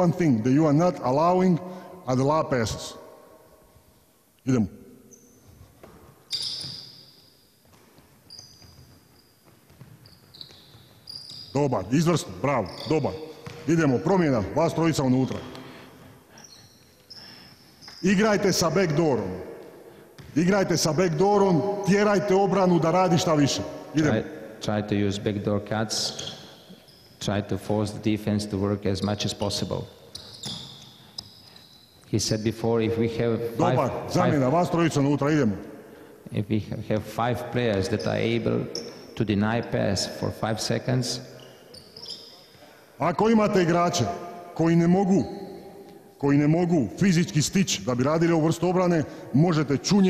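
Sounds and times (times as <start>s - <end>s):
shoes squeaking on gym floor: 5.1s - 15.6s, 16.3s - 18.2s, 25.9s - 27.2s, 28.8s - 32.6s, 37.7s - 39.2s, 41.3s - 42.7s
basketball bouncing: 7.6s - 11.5s, 12.8s - 13.9s, 20.2s - 20.4s.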